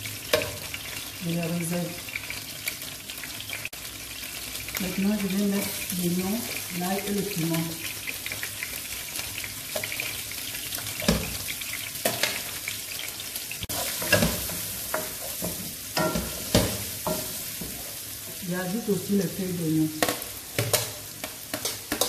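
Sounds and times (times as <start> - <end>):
food sizzling in hot oil: 0.0 - 22.0.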